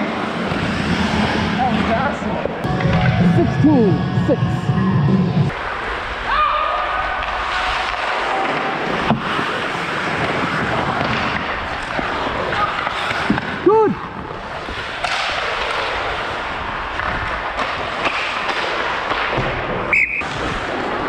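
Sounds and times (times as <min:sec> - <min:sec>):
skate blades scraping ice: 0:07.1 - 0:21.0
hockey sticks and puck knocking: 0:07.2 - 0:13.6, 0:14.9 - 0:16.1, 0:16.9 - 0:20.0
person shouting: 0:13.6 - 0:14.0.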